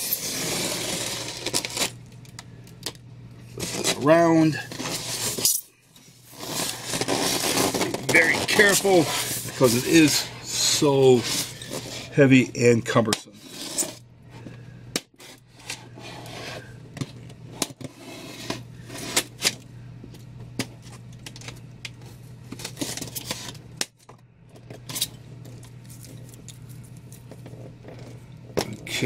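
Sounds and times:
steady low hum: 0.0s - 29.0s
styrofoam and cardboard box handled: 6.2s - 12.1s.

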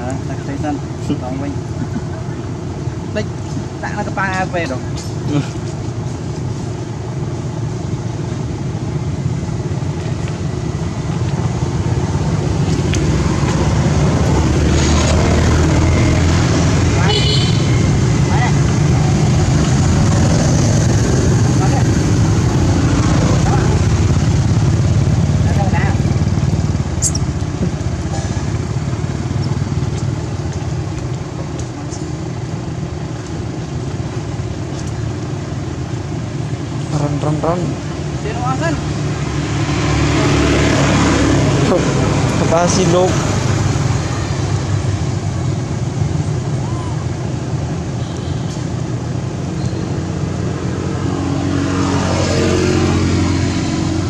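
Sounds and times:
vehicle engine rumble: 0.0s - 54.0s.

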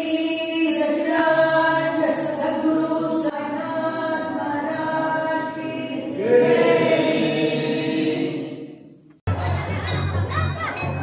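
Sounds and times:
voices singing a hymn: 0.2s - 9.0s.

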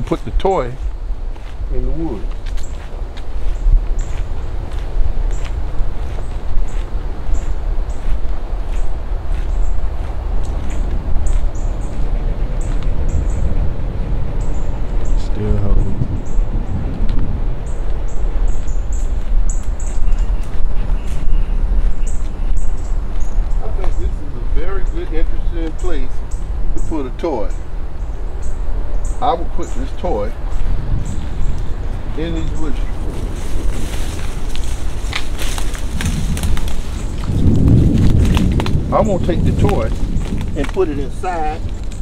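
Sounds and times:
footsteps on forest floor: 0.0s - 12.8s, 17.8s - 24.1s, 29.8s - 42.0s
twigs crackling: 0.0s - 13.4s, 17.8s - 42.0s
leaves rustling: 0.0s - 42.0s
steady low rumble: 0.0s - 42.0s
wind buffeting microphone: 0.0s - 42.0s.

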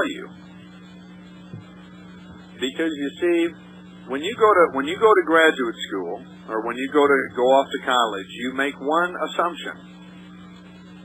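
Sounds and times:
man speaking: 0.0s - 0.3s, 2.6s - 9.8s
electrical mains hum: 0.0s - 11.0s.

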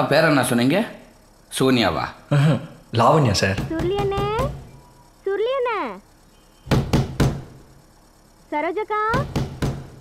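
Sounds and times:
knocks on a door: 3.5s - 4.7s, 6.7s - 7.6s, 9.1s - 10.0s.

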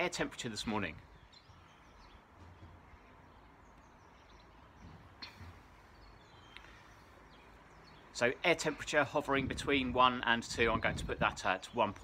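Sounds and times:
faint bird chirps: 1.0s - 8.8s.

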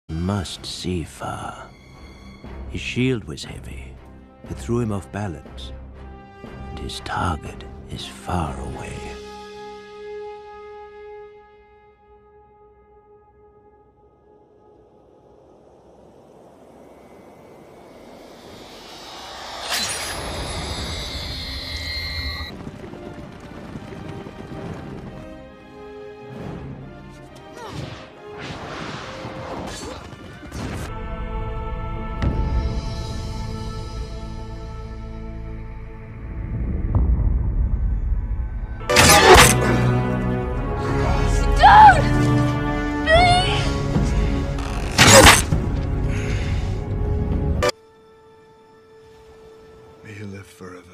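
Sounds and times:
orchestral score: 0.1s - 15.4s, 22.5s - 37.0s, 38.6s - 50.9s
rising swell: 13.5s - 22.5s
high ringing tone: 16.4s - 22.5s
low rumble: 35.3s - 38.9s
sharp spear strike: 38.9s - 39.8s, 44.9s - 45.6s
high wordless vocal cry: 41.4s - 42.3s, 43.0s - 43.8s.

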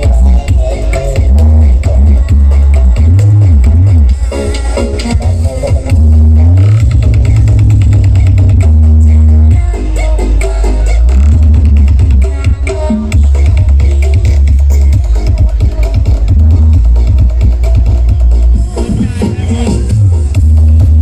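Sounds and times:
loud electronic dance music: 0.0s - 21.0s.

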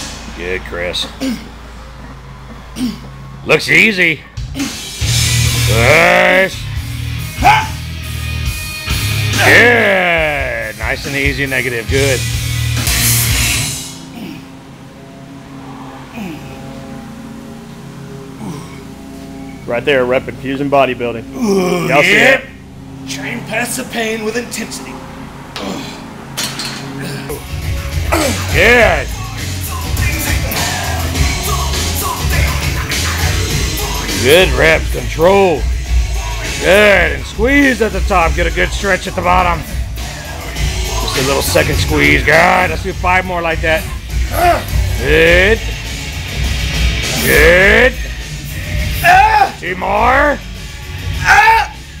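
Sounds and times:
man grunting: 1.0s - 1.6s, 2.8s - 3.1s, 7.4s - 7.8s, 14.2s - 14.5s, 18.4s - 18.9s, 21.3s - 22.5s, 25.6s - 26.1s, 28.1s - 29.1s, 44.2s - 45.4s, 49.0s - 49.6s, 51.2s - 51.8s
steady low hum: 10.7s - 49.0s.

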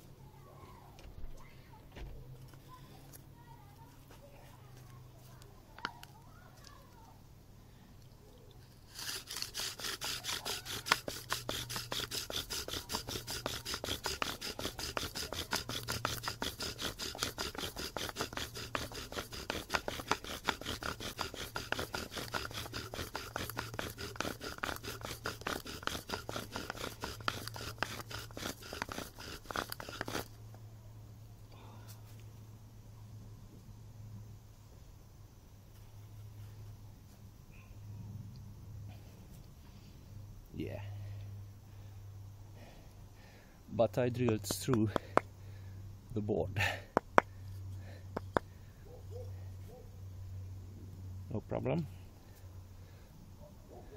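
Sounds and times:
bow drill scraping squeak: 8.9s - 30.4s.

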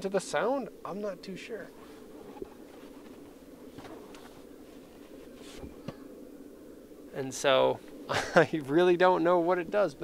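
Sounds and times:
light clicks and rustles: 1.7s - 6.1s.

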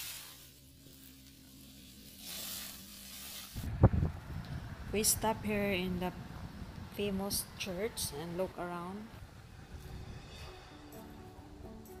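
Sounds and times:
low rumble: 3.6s - 11.9s.

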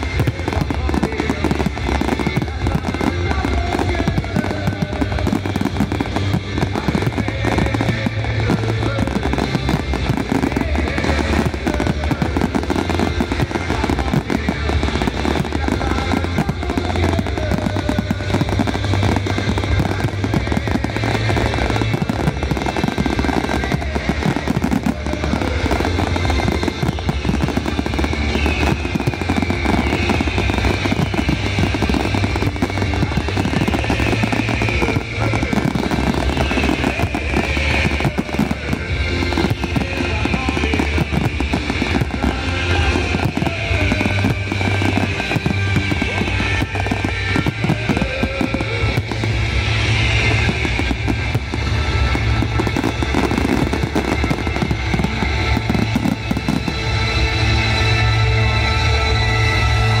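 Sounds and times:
fireworks bangs and crackles: 0.0s - 60.0s
music playing: 0.0s - 60.0s.

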